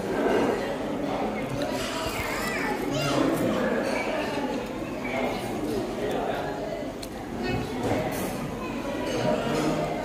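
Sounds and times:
child talking: 0:01.8 - 0:03.9, 0:07.4 - 0:09.5.

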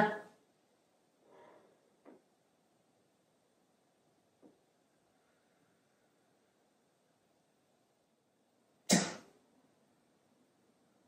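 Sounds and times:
person coughing: 0:08.9 - 0:09.3.

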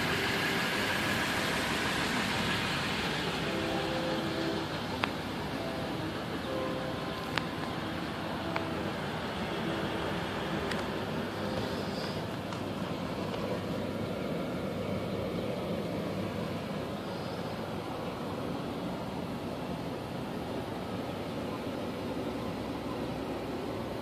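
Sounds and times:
road and engine noise in cab: 0:00.0 - 0:24.0.

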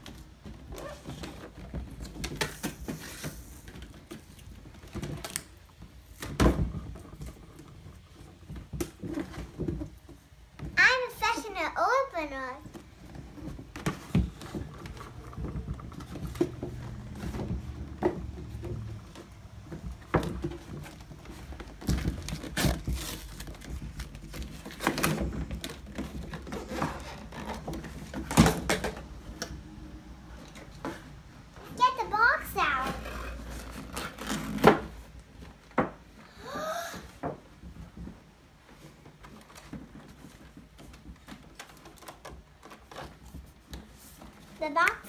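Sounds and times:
child's voice: 0:10.8 - 0:12.8, 0:31.6 - 0:33.2, 0:44.6 - 0:45.0.

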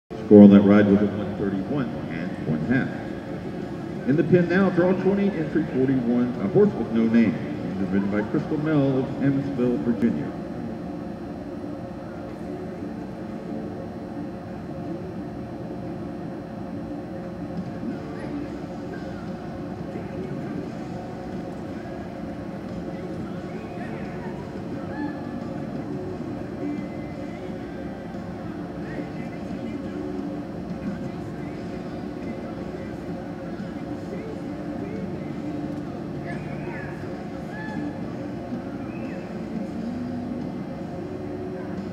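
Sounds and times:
arena hum: 0:00.1 - 0:41.9.

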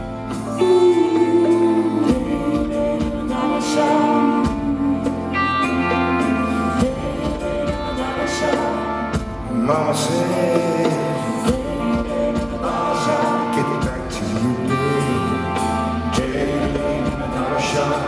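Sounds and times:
live rock band playing: 0:00.0 - 0:18.0
man singing lead vocal: 0:00.0 - 0:18.0
women singing backing vocals: 0:00.4 - 0:15.5, 0:16.1 - 0:18.0.

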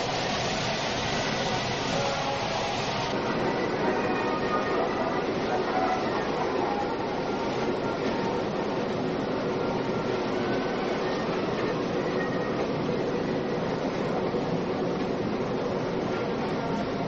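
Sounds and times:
electric train running on track: 0:00.0 - 0:17.0.

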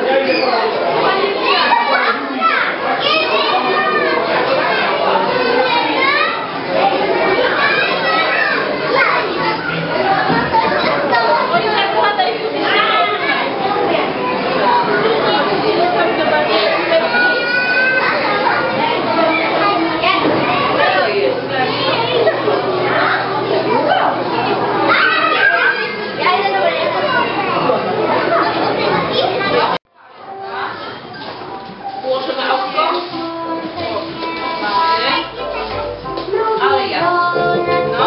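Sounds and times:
children chattering and shouting: 0:00.0 - 0:38.0.

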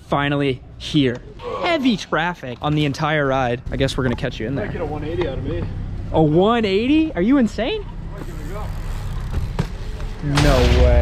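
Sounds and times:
bike tyres rolling on asphalt: 0:02.7 - 0:10.4
steady low rumble: 0:10.4 - 0:11.0.

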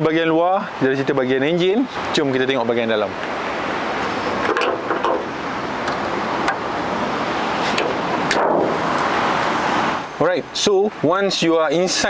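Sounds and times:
road traffic rushing: 0:00.0 - 0:12.0
car bonnet clicking shut: 0:04.4 - 0:06.6.

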